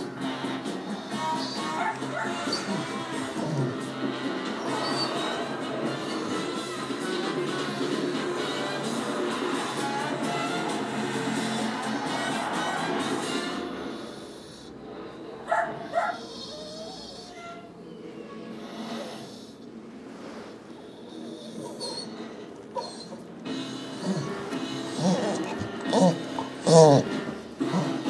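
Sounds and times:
television advert music: 0.0s - 16.1s, 22.2s - 28.0s.

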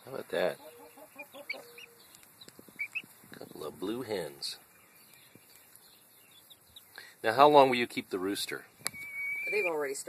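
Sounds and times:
chickens clucking: 0.0s - 4.6s
high chirps: 0.6s - 3.2s, 8.7s - 10.0s.

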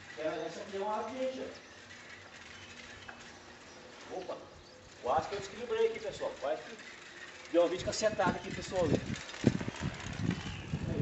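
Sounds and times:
bicycle rattling over concrete: 0.0s - 11.0s.

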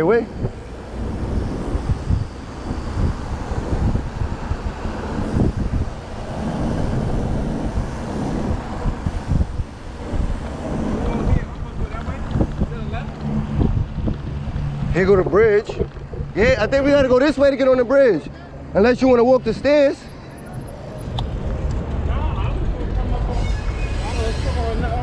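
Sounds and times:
road and car traffic rushing: 0.0s - 25.0s
wind buffeting microphone: 0.0s - 25.0s.

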